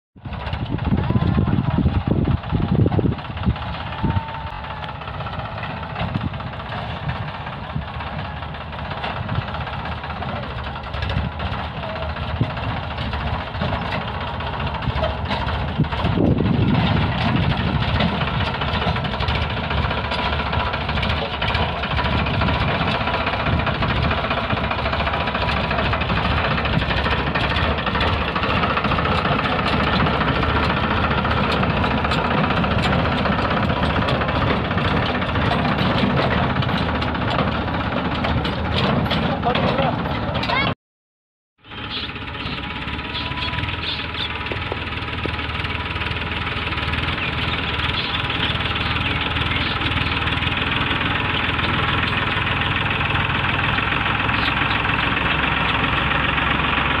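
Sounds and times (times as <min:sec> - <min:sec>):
tractor diesel engine running: 0:00.2 - 0:40.8, 0:41.6 - 0:57.0.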